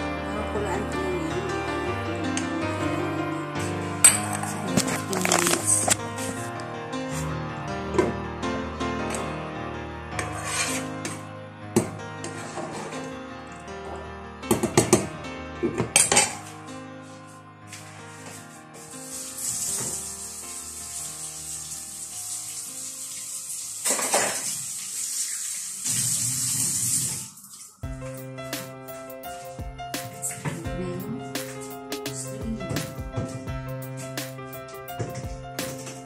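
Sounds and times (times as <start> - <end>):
tap running into sink: 19.4 - 20.1, 23.8 - 27.3
metal utensils clattering on pot: 23.9 - 24.4.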